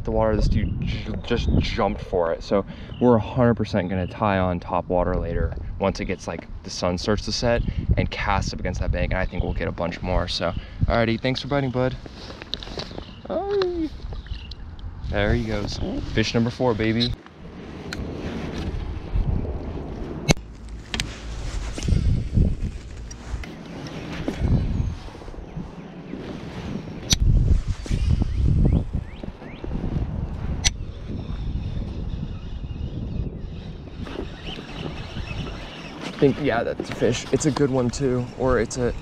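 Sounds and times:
wind rumbling on microphone: 0.0 - 39.0.

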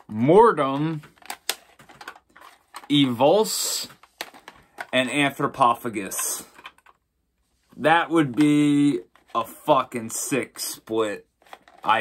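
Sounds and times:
plastic cases clicking together: 1.0 - 2.9, 3.9 - 5.0, 6.0 - 7.0, 11.4 - 12.0.

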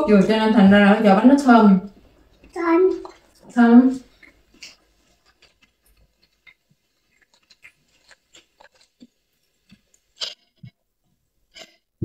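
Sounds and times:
chewing crispy food: 1.9 - 10.7.

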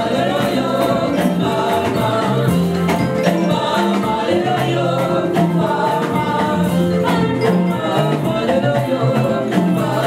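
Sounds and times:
group singing gospel song: 0.0 - 10.0
instrumental backing with bass: 0.0 - 10.0.

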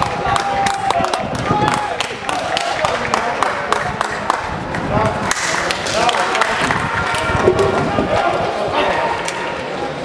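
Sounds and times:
people clapping: 0.0 - 7.9.

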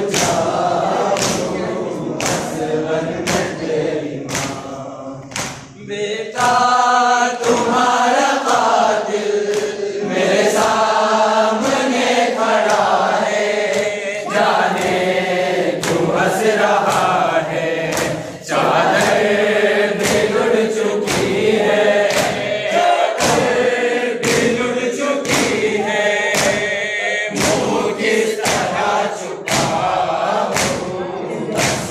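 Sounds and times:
group chanting in chorus: 0.0 - 31.9
sharp rhythmic beats: 0.0 - 31.9.

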